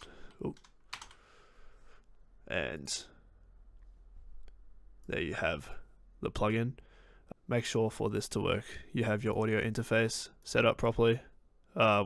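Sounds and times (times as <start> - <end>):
computer keyboard keystrokes: 0.0 - 1.2.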